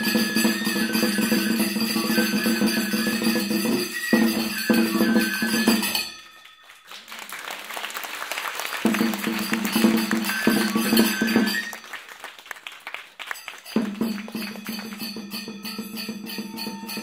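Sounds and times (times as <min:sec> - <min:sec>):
drum beats: 0:00.0 - 0:06.2, 0:08.6 - 0:12.1, 0:13.4 - 0:17.0
jangling hand cymbals: 0:00.0 - 0:06.9, 0:08.9 - 0:11.9, 0:13.4 - 0:17.0.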